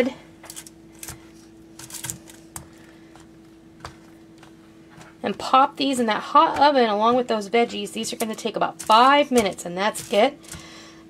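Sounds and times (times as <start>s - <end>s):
faint steady hum: 0.0s - 11.0s
aluminium foil crinkling: 0.4s - 2.9s, 8.1s - 10.6s.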